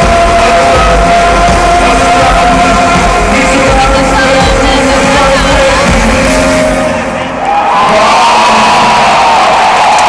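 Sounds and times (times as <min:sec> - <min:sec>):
live band music: 0:00.0 - 0:07.5.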